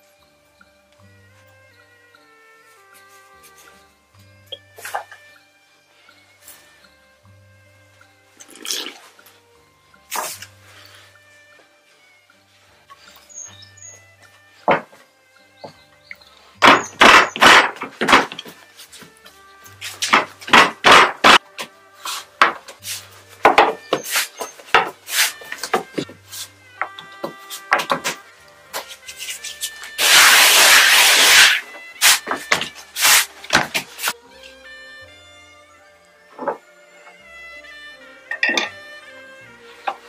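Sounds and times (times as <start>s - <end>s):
soft instrumental music: 0.0s - 40.0s
rolling pin rolling dough: 19.8s - 28.2s, 28.8s - 34.2s.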